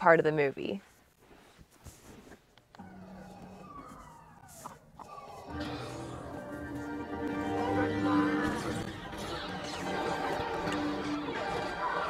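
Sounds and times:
steady low soundtrack tones: 2.8s - 12.0s
sweeping sound effects: 2.8s - 12.0s.

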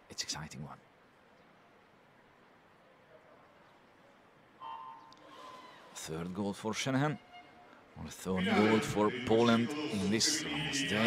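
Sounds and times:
poolside ambience: 0.0s - 11.0s.

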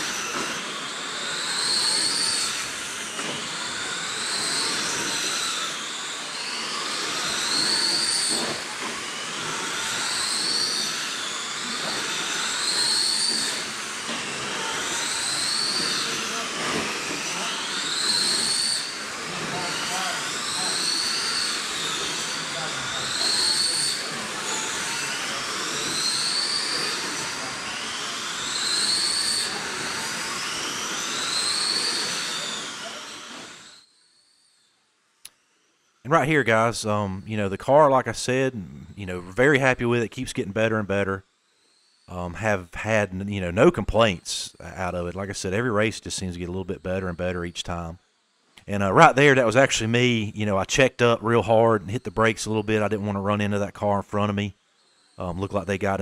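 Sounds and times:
rc car motors whining: 0.0s - 56.0s.

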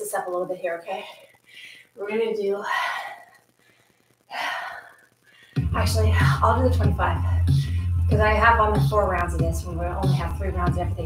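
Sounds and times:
woman's voice: 0.0s - 1.3s, 2.0s - 3.3s, 5.7s - 7.5s, 8.1s - 11.0s.

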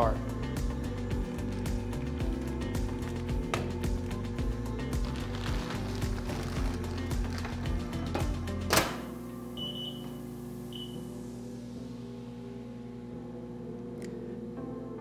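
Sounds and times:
background music: 0.0s - 15.0s
plastic bag crinkling: 5.0s - 7.6s
steel door shutting: 8.6s - 9.1s.

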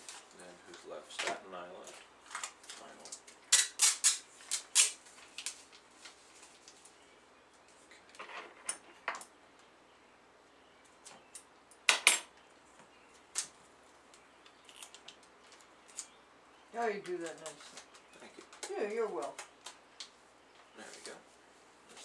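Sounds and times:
packages being wrapped by hand: 0.0s - 7.0s, 17.2s - 20.1s.

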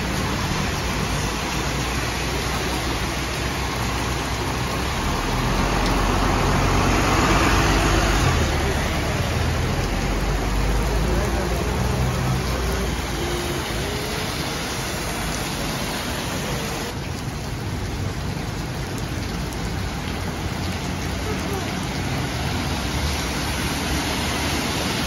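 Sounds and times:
cars driving through water: 0.0s - 25.0s
heavy rain pouring: 0.0s - 25.0s.

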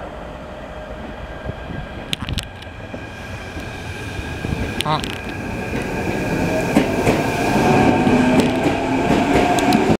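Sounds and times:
train wheel clatter: 4.7s - 10.0s
sharp clicks from rails: 7.8s - 10.0s.

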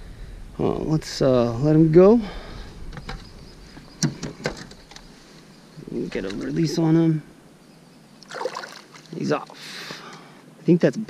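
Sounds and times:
knocks and clicks in a kayak: 4.0s - 5.0s.

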